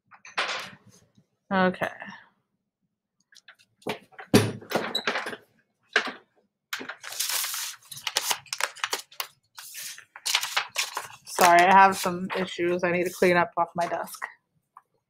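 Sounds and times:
paper rustling: 6.8 - 13.4.

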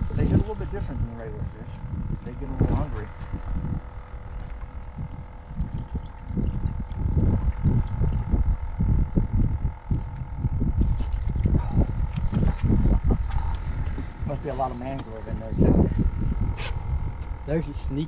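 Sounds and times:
faint steady hum: 0.0 - 18.0
wind buffeting microphone: 0.0 - 18.0.

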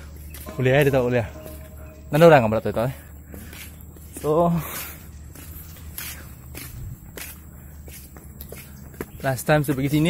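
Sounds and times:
soft footsteps on a path: 0.0 - 10.0.

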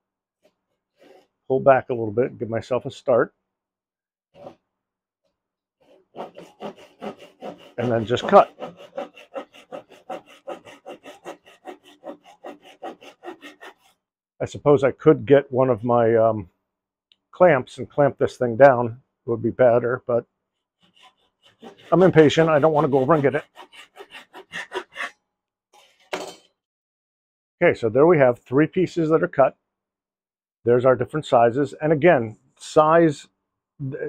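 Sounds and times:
hand saw cutting wood: 0.9 - 1.3, 4.4 - 4.6, 5.8 - 14.0, 20.8 - 25.1, 25.8 - 26.2.

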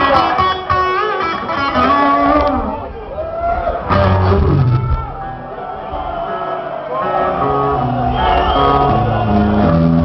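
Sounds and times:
electric guitar licks: 0.0 - 3.0, 3.8 - 5.2, 7.0 - 10.0.

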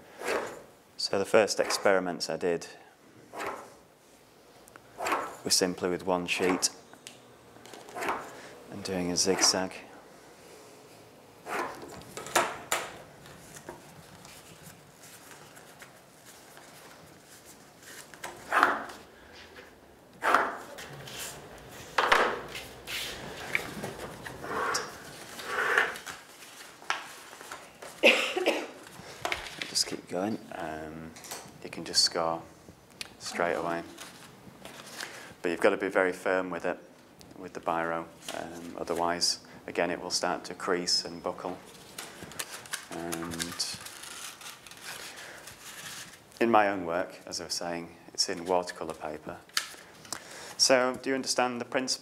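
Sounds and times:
paper rustling: 13.2 - 19.0, 22.5 - 28.0, 33.4 - 35.2, 41.6 - 46.4.

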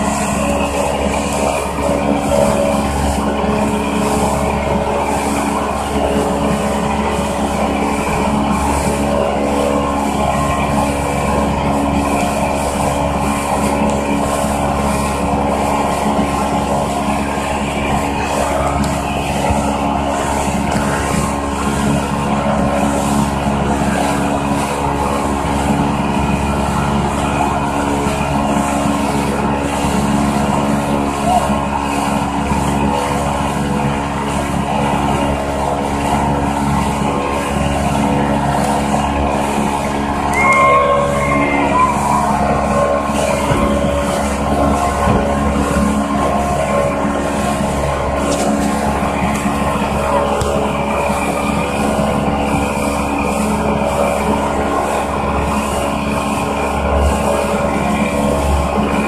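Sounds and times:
speedboat engine running: 0.0 - 59.0
water rushing from wake: 0.0 - 59.0.

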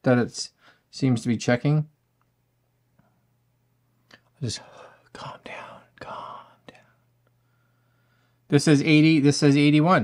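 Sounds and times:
man whispering: 4.2 - 7.0.

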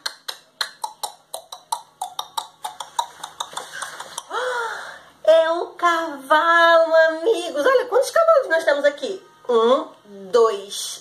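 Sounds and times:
tongue clicks imitating hooves: 0.0 - 4.3.

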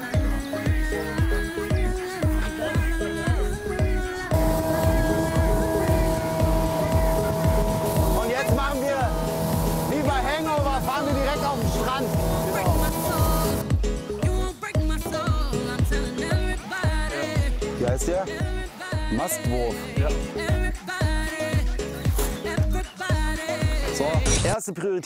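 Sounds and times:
music with steady beat: 0.0 - 24.4
voices: 2.4 - 13.6
motorboat engine running: 3.3 - 13.8
rushing water: 4.2 - 13.7.

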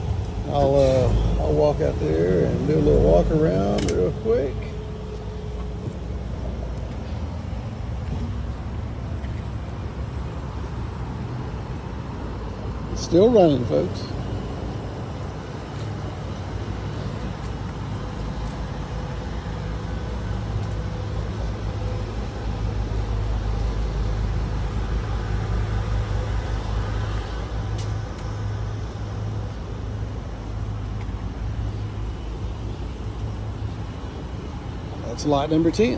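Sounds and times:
bus engine idling: 0.0 - 35.9.

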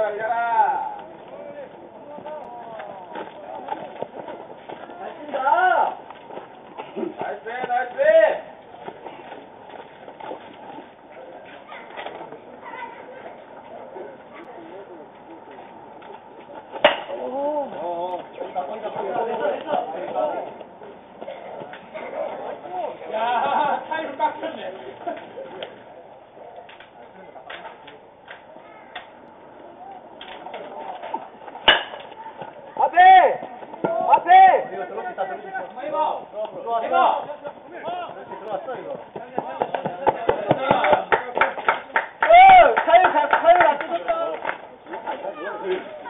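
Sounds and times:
faint background chatter: 0.0 - 46.0
baseball bat hitting ball: 16.8 - 17.2, 31.6 - 32.1
players shouting: 32.3 - 38.8
man shouting: 32.8 - 34.7.

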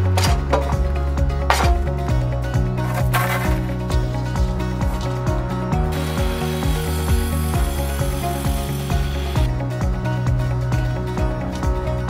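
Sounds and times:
music with steady beat: 0.0 - 12.0
mitre saw cutting timber: 5.9 - 9.5.

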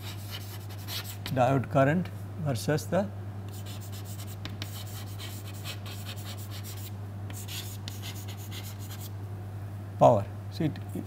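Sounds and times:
chalk strokes on chalkboard: 0.0 - 1.3, 3.5 - 9.1
steady low hum: 0.0 - 11.0.

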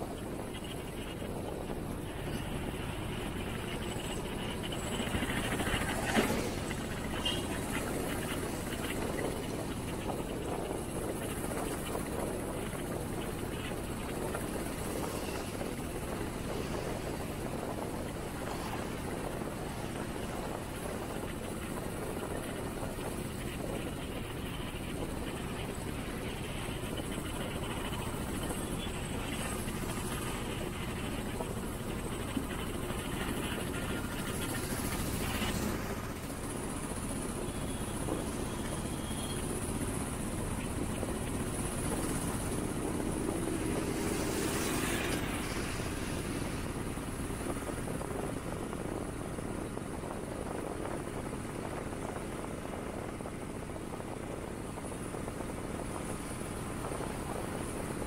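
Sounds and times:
vehicle road rumble: 0.0 - 58.0.

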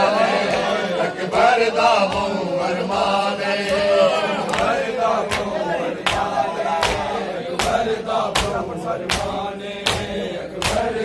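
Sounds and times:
men chanting in unison: 0.0 - 11.0
chest-beating slaps: 4.5 - 11.0.

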